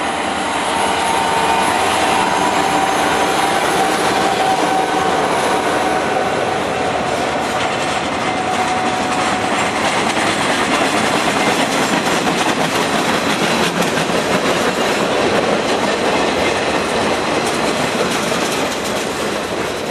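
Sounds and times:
train wheels rolling on rails: 0.0 - 19.9.

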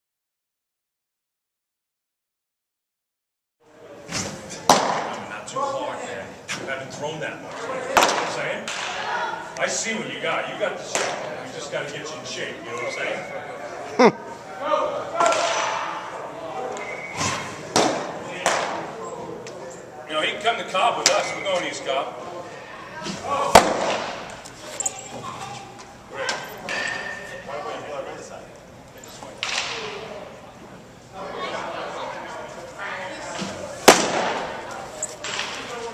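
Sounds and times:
indistinct voices in echoing room: 3.7 - 35.9
man speaking: 14.0 - 14.2.

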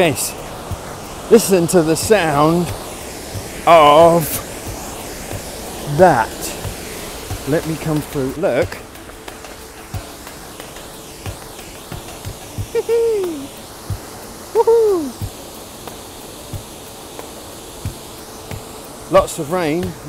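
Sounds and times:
waterfall rushing: 0.0 - 20.0
falling hoot-like calls: 14.5 - 15.2.

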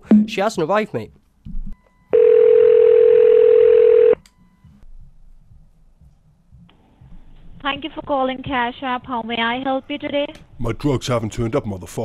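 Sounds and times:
telephone dial tone: 2.1 - 4.2.

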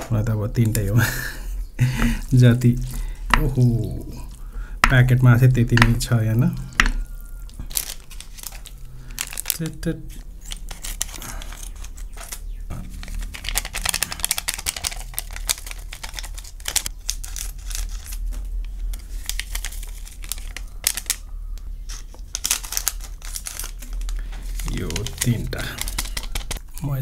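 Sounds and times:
plastic sachets crinkling: 0.6 - 26.7.

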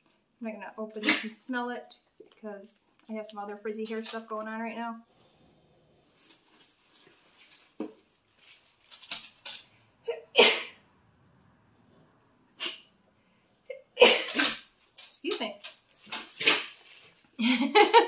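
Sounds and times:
paper and plastic rustling: 3.8 - 4.4, 6.2 - 9.8, 14.4 - 18.0.

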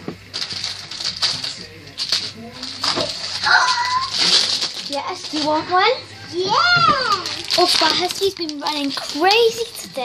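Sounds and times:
foil snack packet crinkling: 0.3 - 5.9, 7.1 - 10.0.

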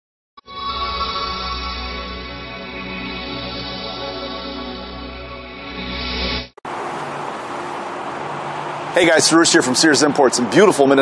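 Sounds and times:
intro music: 0.4 - 6.6.

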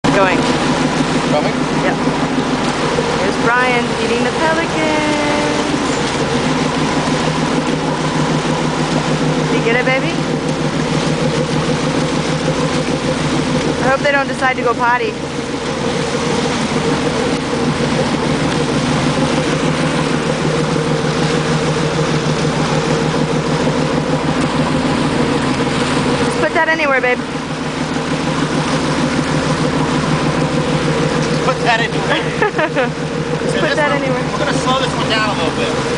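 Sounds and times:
boat motor running: 0.0 - 35.9
water churning and splashing: 0.0 - 35.9.

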